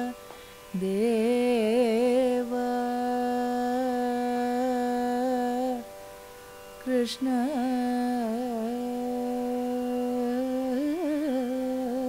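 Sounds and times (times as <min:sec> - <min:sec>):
woman singing long note: 0:06.8 - 0:12.0.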